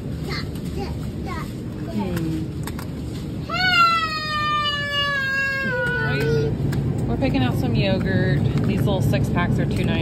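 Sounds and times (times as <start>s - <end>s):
child whining cry: 3.4s - 6.6s.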